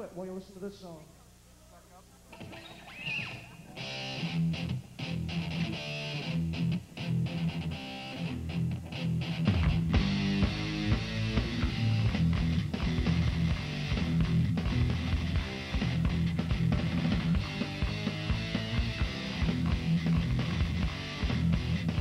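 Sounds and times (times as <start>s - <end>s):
electric guitars: 2.3s - 22.0s
live rock band: 2.4s - 22.0s
heavy bass: 4.1s - 22.0s.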